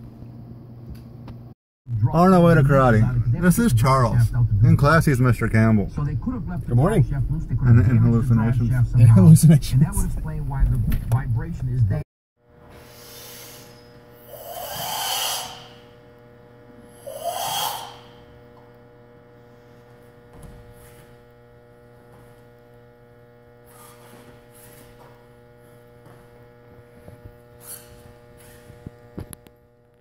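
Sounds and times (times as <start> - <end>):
electrical mains hum: 0.0 - 30.0
forceful exhalations: 12.8 - 15.8, 17.0 - 18.2, 23.7 - 24.8
rustles and foot taps: 19.9 - 21.3, 22.0 - 22.6, 23.6 - 29.3.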